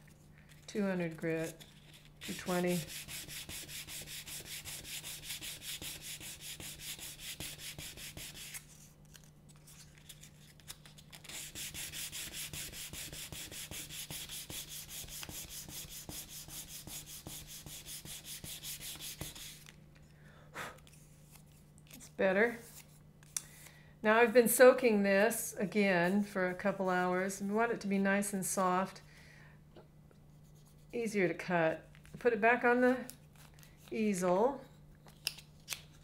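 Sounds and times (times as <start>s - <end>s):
sandpaper rubbing on cane: 1.4s - 8.8s, 11.2s - 19.7s.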